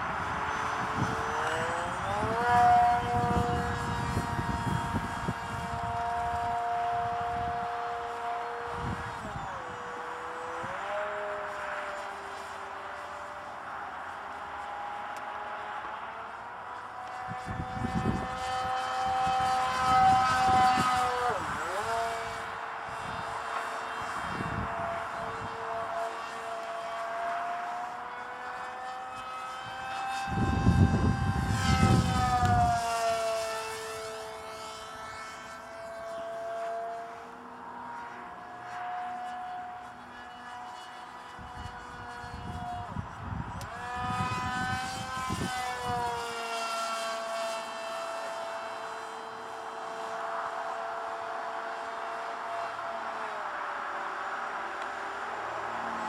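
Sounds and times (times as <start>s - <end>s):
wind rumble on microphone: 0.0s - 12.8s, 17.1s - 27.1s, 29.6s - 35.4s, 41.3s - 49.9s
model plane propeller whine: 0.0s - 56.0s.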